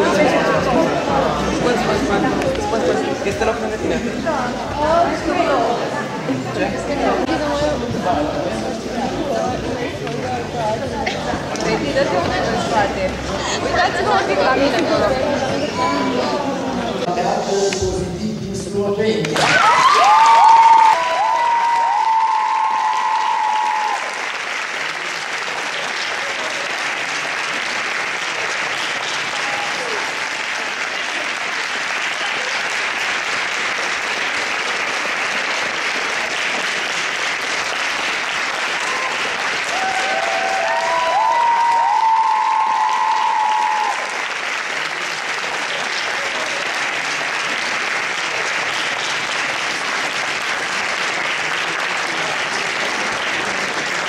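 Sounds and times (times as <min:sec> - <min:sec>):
audience applauding: 0:19.2 - 0:54.0.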